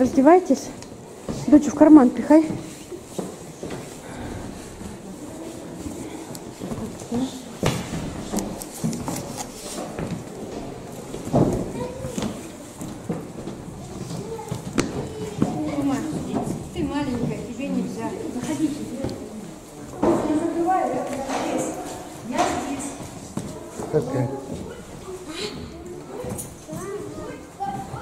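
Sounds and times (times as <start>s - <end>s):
indistinct background talk: 0.0s - 28.0s.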